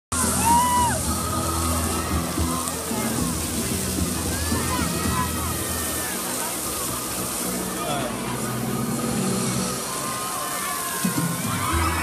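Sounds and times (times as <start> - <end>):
fountain water jets spraying: 0.1 - 12.0
music: 0.1 - 12.0
people talking: 1.1 - 12.0.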